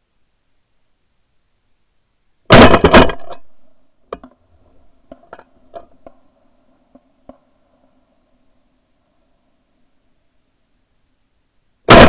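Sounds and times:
shotgun blasts: 0:02.5 - 0:03.4.

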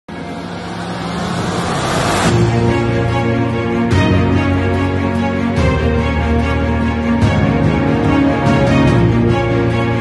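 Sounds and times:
rushing whoosh riser effect: 0:00.1 - 0:03.9
theme music: 0:00.1 - 0:10.0.

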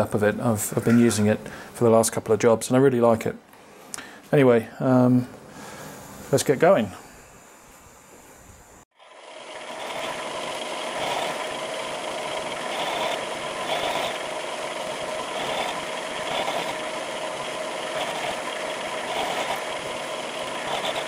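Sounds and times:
milling machine cutting steel: 0:09.1 - 0:21.0.

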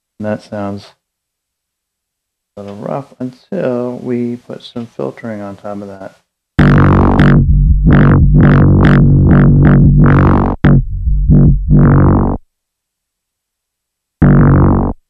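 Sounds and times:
distorted synth bass notes: 0:06.6 - 0:12.4, 0:14.2 - 0:15.0.

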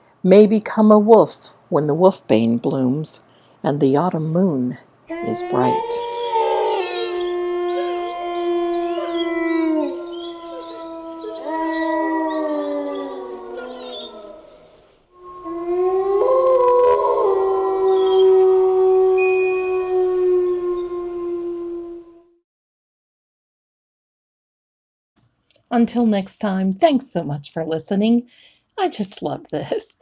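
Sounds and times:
wolves howling: 0:05.1 - 0:22.4.

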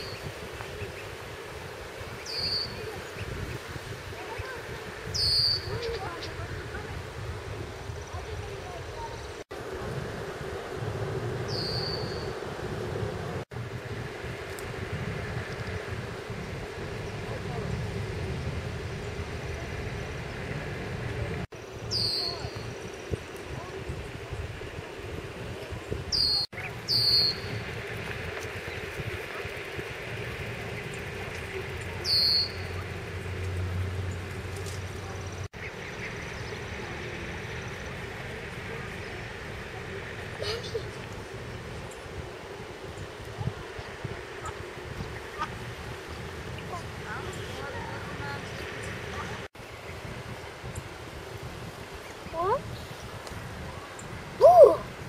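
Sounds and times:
outdoor rumble and hiss: 0:00.0 - 0:55.0.

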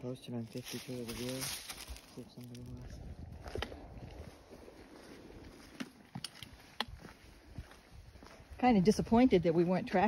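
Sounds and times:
soft footsteps: 0:00.4 - 0:10.0
trekking pole taps: 0:05.8 - 0:07.0.

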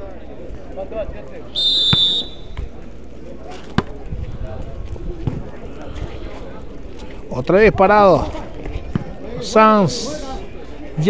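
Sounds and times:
murmur of spectators: 0:00.0 - 0:11.0
referee's whistle: 0:01.5 - 0:02.6.

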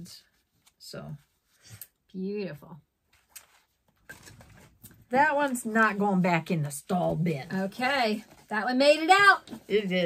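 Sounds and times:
paper rustling: 0:03.1 - 0:06.0.

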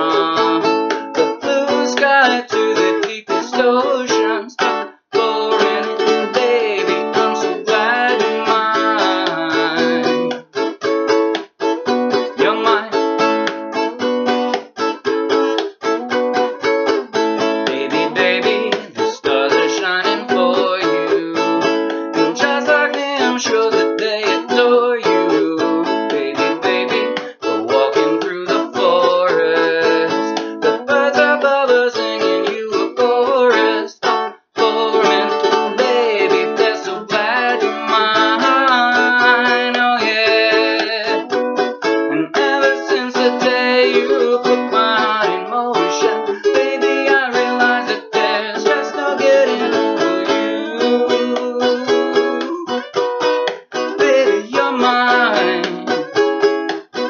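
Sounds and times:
man singing: 0:00.0 - 0:10.4, 0:12.1 - 0:13.3, 0:17.3 - 0:57.0
ukulele strumming: 0:00.0 - 0:57.0.

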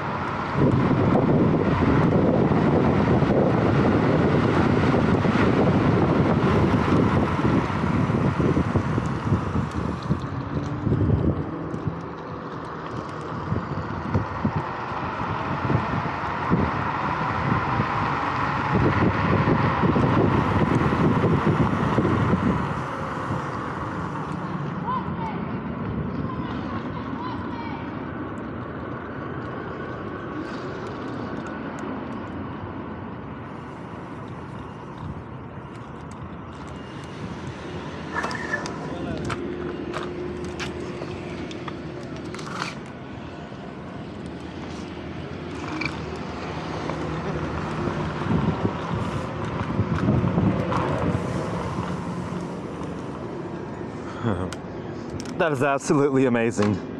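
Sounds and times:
wind rushing over microphone: 0:00.0 - 0:56.9.

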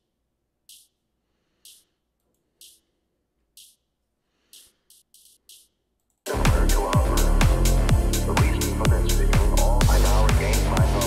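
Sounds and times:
electronic hi-hat hits: 0:00.7 - 0:01.0, 0:01.6 - 0:01.9, 0:04.5 - 0:05.7, 0:06.3 - 0:11.0.

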